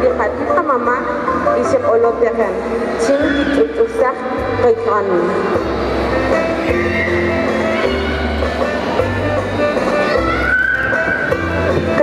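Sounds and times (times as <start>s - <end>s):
woman speaking over public address: 0.0s - 5.6s
music: 0.0s - 12.0s.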